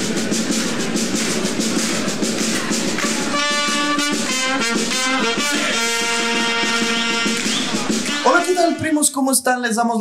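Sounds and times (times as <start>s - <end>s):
intro music with fast drum beat: 0.0s - 9.2s.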